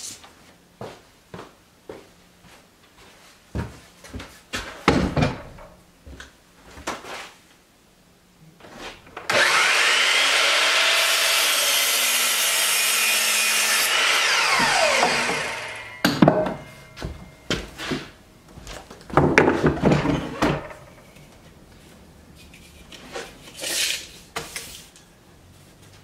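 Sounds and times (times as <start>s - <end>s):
electric miter saw whining: 9.3s - 17.2s.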